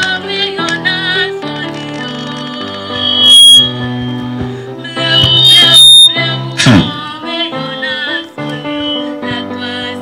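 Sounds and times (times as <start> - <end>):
girl singing into a microphone: 0.0 - 4.0, 4.8 - 10.0
electronic keyboard accompaniment: 0.0 - 10.0
shrill high tone: 2.8 - 4.4, 5.0 - 6.4.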